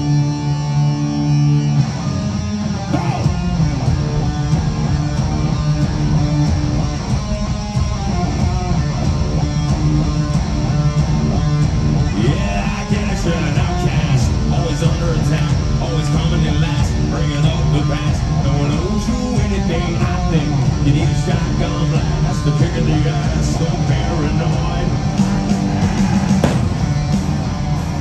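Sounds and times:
live rock band: 0:00.0 - 0:28.0.

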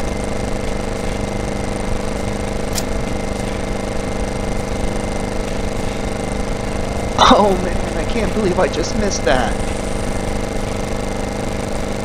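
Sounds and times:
motor running steadily: 0:00.0 - 0:12.0.

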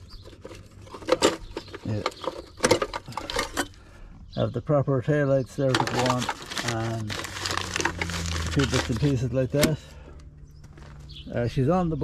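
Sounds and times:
parts clinking in a box: 0:00.0 - 0:03.8, 0:05.6 - 0:09.8
plastic wrapping rustling: 0:05.7 - 0:09.8.

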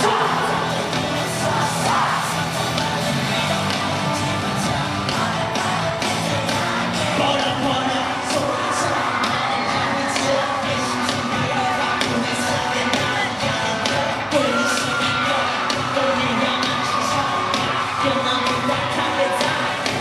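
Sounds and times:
person singing: 0:00.0 - 0:20.0
steady drum beat: 0:00.0 - 0:20.0.

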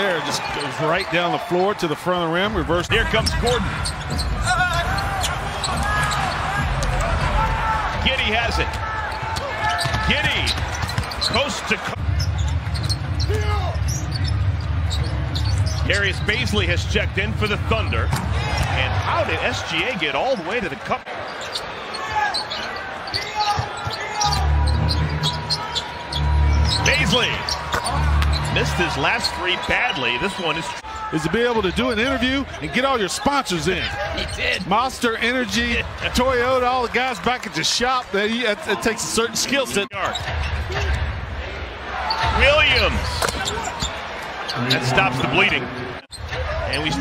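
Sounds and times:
crowd rumble: 0:02.5 - 0:21.5, 0:23.7 - 0:29.7
sneakers squeaking: 0:03.1 - 0:07.2, 0:08.0 - 0:16.4, 0:21.1 - 0:30.0, 0:33.8 - 0:34.7, 0:39.8 - 0:41.1, 0:41.9 - 0:47.0.

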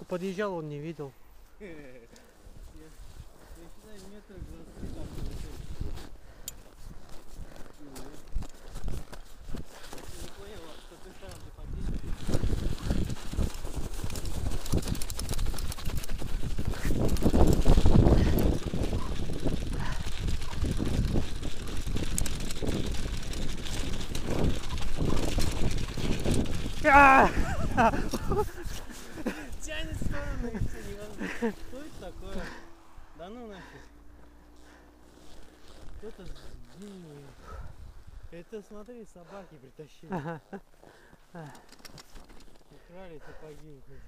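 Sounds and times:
bike tyres crunching on snow: 0:02.4 - 0:39.1
wind on microphone: 0:11.5 - 0:32.6
bike knocks and rattles: 0:12.5 - 0:26.8.

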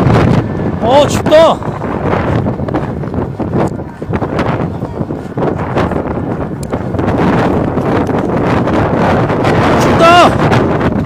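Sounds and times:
wind noise on microphone: 0:00.0 - 0:11.0.

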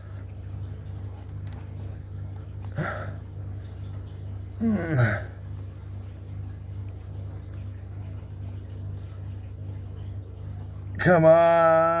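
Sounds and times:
steady low hum: 0:00.0 - 0:12.0
voiced grunt: 0:04.6 - 0:05.4.

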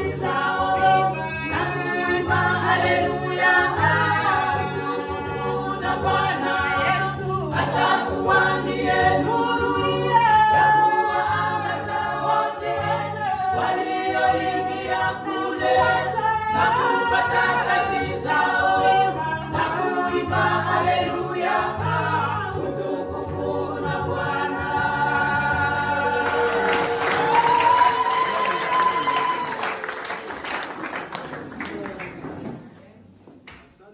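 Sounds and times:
women's choir singing a cappella: 0:00.0 - 0:28.0
applause: 0:26.2 - 0:32.5.

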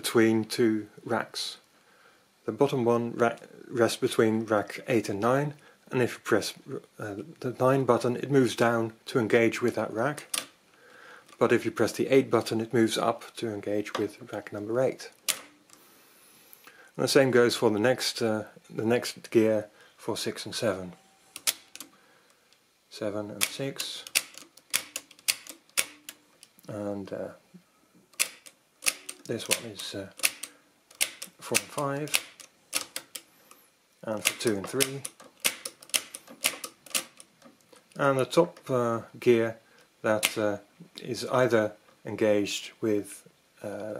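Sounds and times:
calculator keys clicking: 0:23.4 - 0:26.2, 0:34.2 - 0:37.3.

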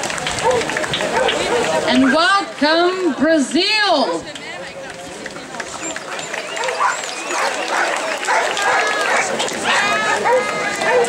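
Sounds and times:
crowd chatter: 0:00.0 - 0:11.0
dogs barking: 0:00.4 - 0:02.4, 0:06.5 - 0:11.0.

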